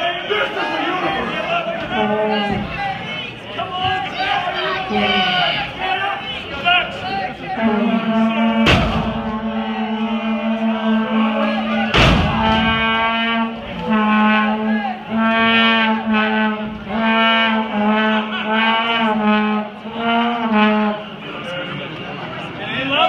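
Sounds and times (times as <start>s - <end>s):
brass-like horn blasts: 7.4s - 21.4s
loud sharp slap: 11.9s - 12.6s.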